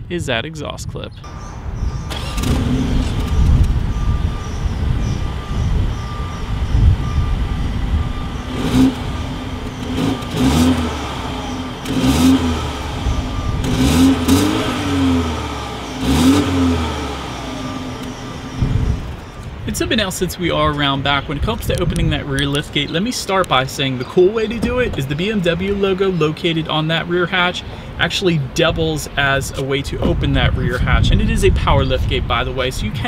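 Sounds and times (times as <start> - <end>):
car engine revving in blips: 1.3 - 19.7
car engine starting and idling: 1.3 - 28.0.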